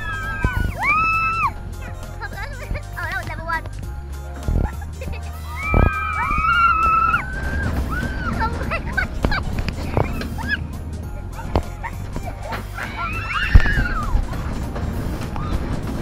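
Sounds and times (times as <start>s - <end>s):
riders screaming: 0.0s - 1.6s, 5.4s - 8.7s, 12.6s - 14.3s
rumble of wind and moving train: 0.0s - 16.0s.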